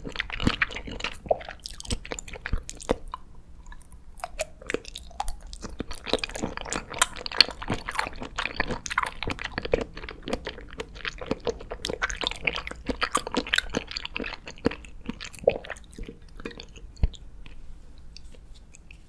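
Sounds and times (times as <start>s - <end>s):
mouth chewing soft jelly: 0.0s - 19.0s.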